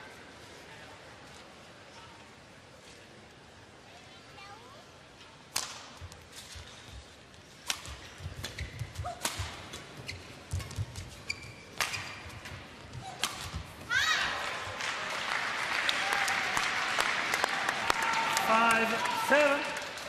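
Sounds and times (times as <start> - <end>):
racket striking shuttlecock: 5.5 - 6.0, 7.6 - 9.9, 11.7 - 13.8
crowd shouting and cheering: 13.9 - 20.0
applause: 14.4 - 20.0.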